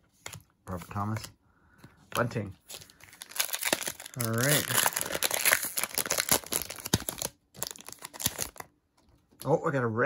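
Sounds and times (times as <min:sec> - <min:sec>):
foil wrapper crinkling and tearing: 0:02.6 - 0:08.7.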